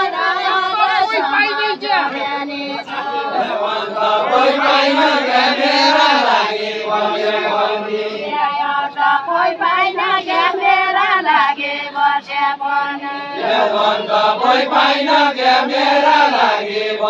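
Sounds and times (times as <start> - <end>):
group singing folk song: 0.0 - 17.0.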